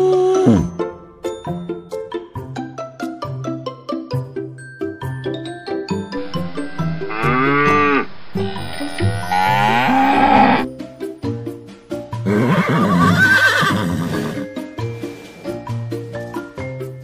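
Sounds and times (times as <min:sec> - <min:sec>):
cow mooing: 0:06.6 - 0:08.2, 0:09.0 - 0:10.6
wavering animal call: 0:06.6 - 0:10.6.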